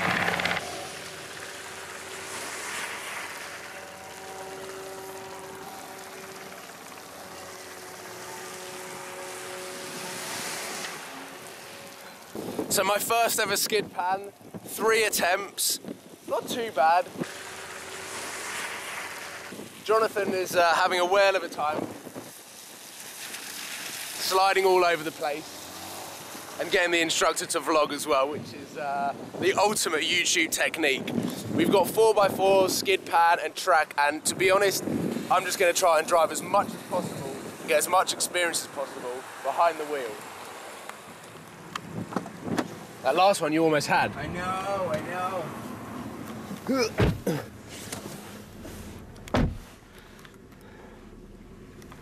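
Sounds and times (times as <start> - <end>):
car engine idling: 0.0 - 12.7, 44.1 - 52.0
faint car engine: 0.0 - 13.6, 17.0 - 29.4, 34.7 - 52.0
tyres hissing on wet tarmac: 0.0 - 28.1, 32.8 - 52.0.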